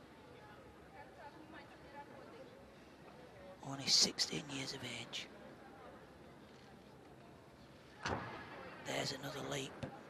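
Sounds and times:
faint arena background: 0:00.0 - 0:10.0.

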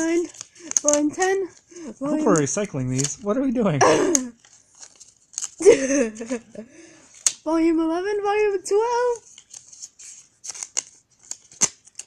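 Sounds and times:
paper crumpling: 0:00.0 - 0:06.4, 0:09.0 - 0:12.0.

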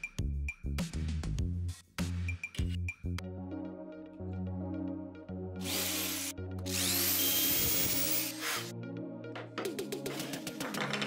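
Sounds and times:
background music: 0:00.0 - 0:11.0
cordless drill drilling into wood: 0:05.6 - 0:08.7.

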